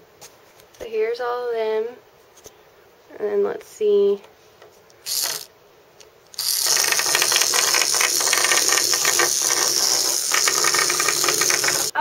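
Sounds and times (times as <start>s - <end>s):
toy motor and gears whirring: 5.0s - 5.5s, 6.3s - 12.0s
fast steady clicking: 5.1s - 5.5s, 6.4s - 12.0s.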